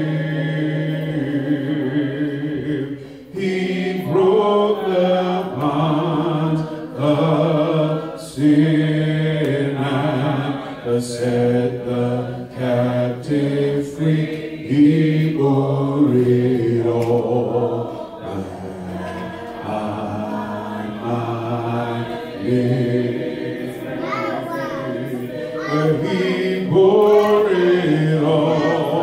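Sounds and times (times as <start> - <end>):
man singing a slow hymn: 0.0 - 23.2, 25.5 - 29.0.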